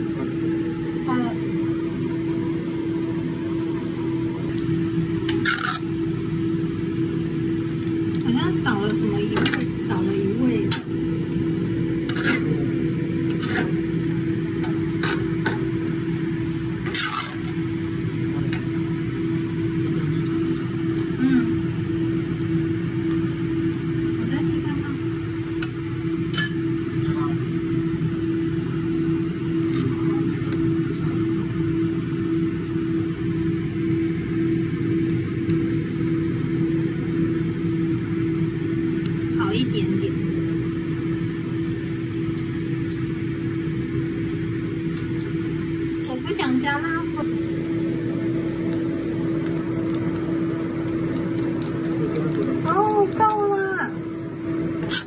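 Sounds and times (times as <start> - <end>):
steady low hum: 0.0 - 55.0
metal utensils scraping a wok: 12.1 - 12.6, 13.3 - 13.8, 16.8 - 17.4.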